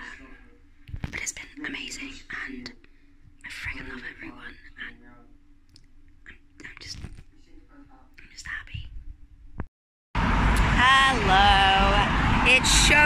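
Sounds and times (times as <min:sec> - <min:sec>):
faint room hum: 0:00.0 - 0:13.0
woman whispering: 0:01.0 - 0:02.8, 0:03.4 - 0:05.0, 0:06.2 - 0:07.2, 0:08.2 - 0:08.9
loud road traffic: 0:10.2 - 0:13.0.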